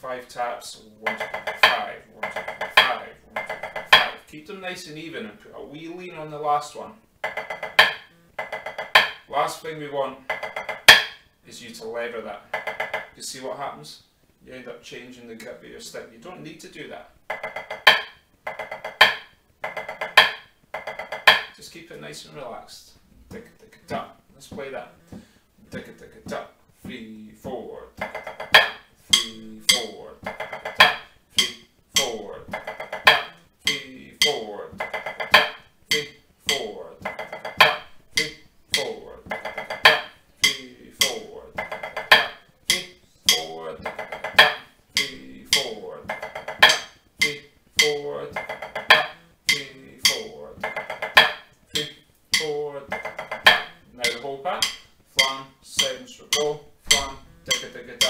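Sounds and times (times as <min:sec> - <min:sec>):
drumsticks on a practice pad: 0:00.9 - 0:04.4, 0:07.2 - 0:09.4, 0:10.3 - 0:11.3, 0:12.4 - 0:13.2, 0:17.2 - 0:21.6, 0:23.3 - 0:58.0.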